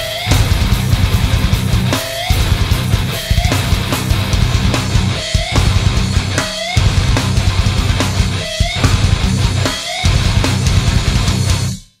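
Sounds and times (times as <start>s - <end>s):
distorted guitar riff: 0.0s - 11.9s
drums: 0.0s - 12.0s.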